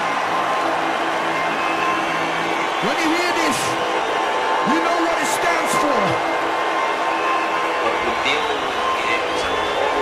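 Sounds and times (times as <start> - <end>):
live concert noise: 0.0 - 10.0.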